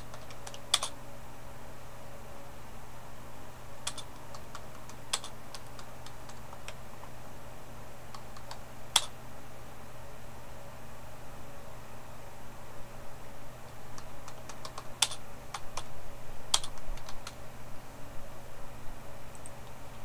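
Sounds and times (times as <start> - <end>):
steady low hum: 0.0 - 20.0
keyboard key clicks: 0.1 - 0.9, 3.9 - 6.8, 8.2 - 9.1, 14.2 - 15.9, 16.5 - 17.4.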